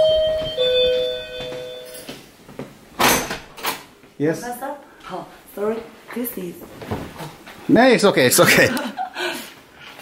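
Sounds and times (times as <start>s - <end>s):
doorbell chime: 0.0s - 2.1s.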